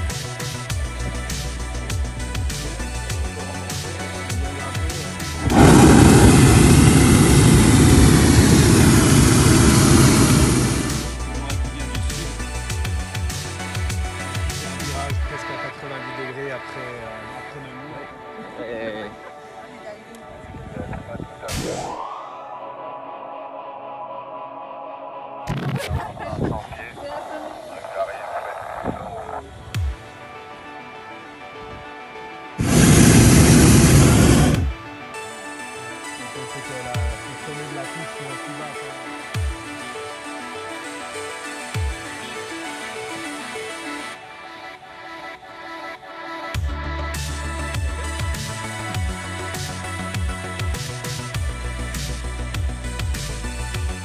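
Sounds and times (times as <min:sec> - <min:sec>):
background music: 0:00.0 - 0:54.0
propane burner firing: 0:05.4 - 0:11.2, 0:32.6 - 0:34.7.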